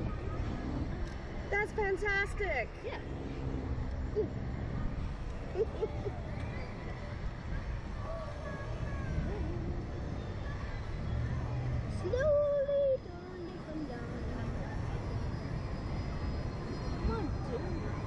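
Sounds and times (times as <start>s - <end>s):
faint rider voices: 0.0s - 18.0s
wind rumbling over microphone: 0.0s - 18.0s.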